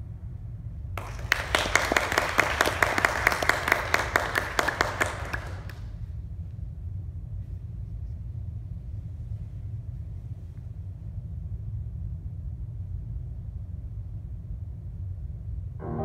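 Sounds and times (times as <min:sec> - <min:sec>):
steady low hum: 0:00.0 - 0:02.3, 0:05.2 - 0:16.0
audience applauding: 0:01.0 - 0:05.9.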